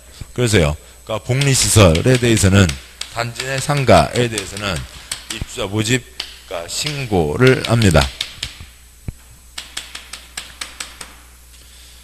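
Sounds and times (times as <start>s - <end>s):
chalk tapping and scraping on chalkboard: 1.3s - 8.8s, 9.6s - 11.2s.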